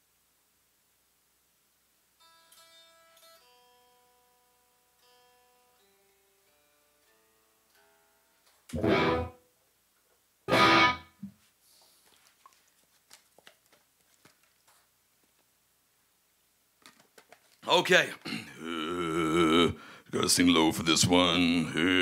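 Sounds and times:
electric guitar single notes: 8.7s - 9.4s, 10.5s - 11.2s
strummed guitar chords: 8.7s - 9.4s, 10.5s - 11.2s.

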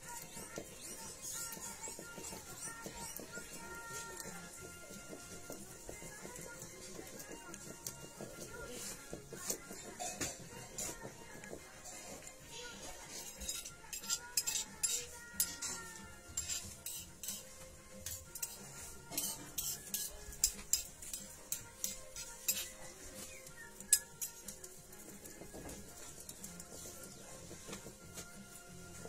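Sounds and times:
faint music: 0.0s - 29.0s.

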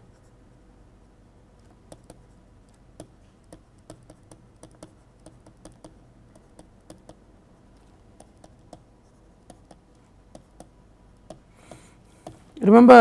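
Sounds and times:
stylus tapping on tablet: 1.9s - 7.2s, 8.2s - 12.5s.

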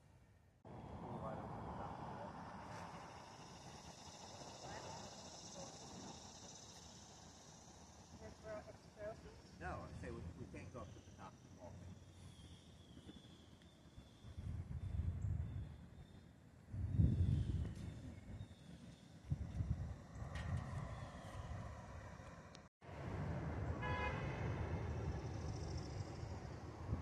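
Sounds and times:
distant city traffic hum: 0.1s - 27.0s
wind buffeting microphone: 9.2s - 22.1s
car horn toot: 23.8s - 24.4s.

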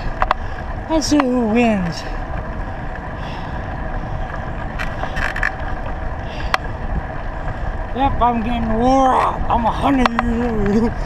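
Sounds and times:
tyre noise on asphalt: 0.0s - 11.0s
wind rush on microphone: 0.0s - 11.0s.

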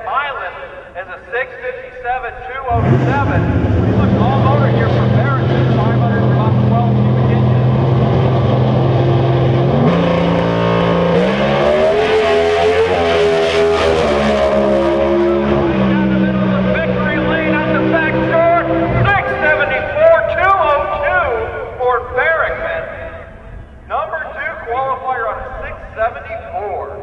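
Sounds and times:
drag car engine at full throttle: 2.7s - 23.9s.

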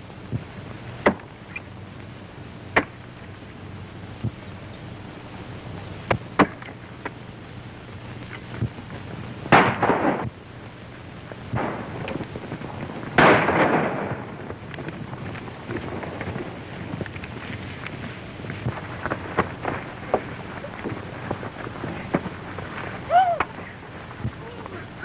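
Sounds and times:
galloping hooves: 11.3s - 25.0s.

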